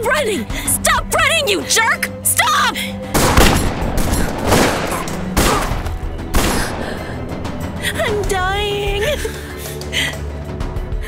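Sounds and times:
loud gunshots: 3.2s - 7.8s.

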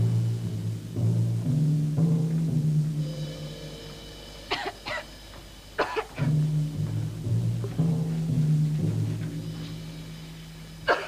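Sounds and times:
girl coughing: 4.5s - 5.1s, 5.8s - 6.3s.

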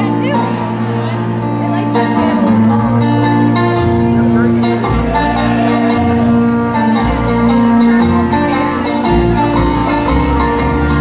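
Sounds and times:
acoustic guitar strumming: 0.0s - 11.0s
banjo picking: 0.0s - 11.0s.

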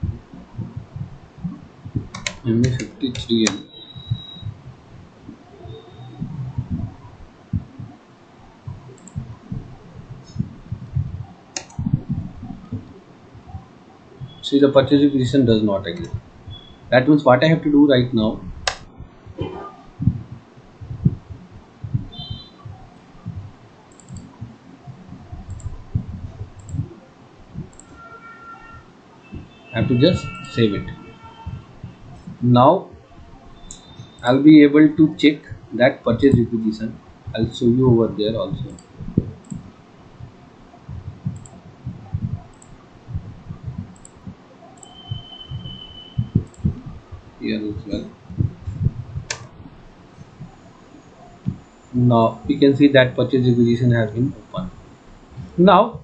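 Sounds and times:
computer keyboard typing: 1.8s - 4.6s, 8.7s - 14.4s, 21.9s - 27.0s, 40.9s - 46.9s
mouse clicks: 2.0s - 4.2s, 11.6s - 12.0s, 23.9s - 24.4s.

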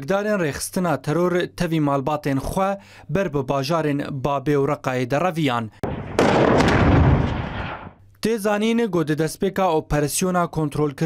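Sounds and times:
heavy gun shot: 5.8s - 8.0s.

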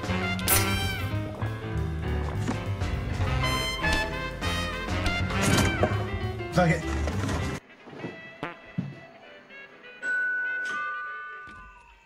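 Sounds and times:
faint music: 2.1s - 12.0s
two-tone doorbell chime: 10.0s - 12.0s.

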